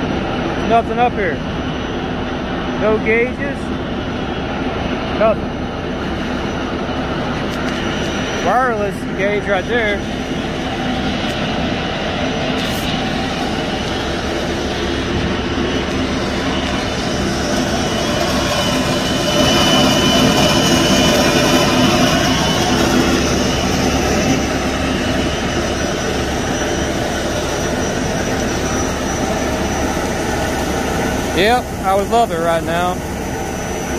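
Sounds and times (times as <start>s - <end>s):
machinery running with low hum: 0.0s - 33.9s.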